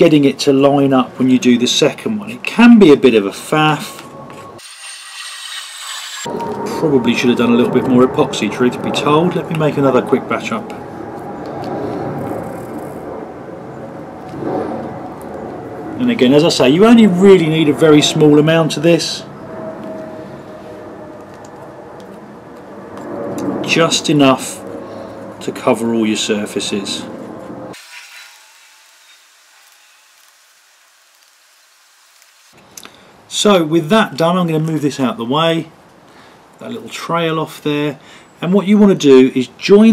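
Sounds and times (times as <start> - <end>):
faint steady hiss: 27.8 - 39.8.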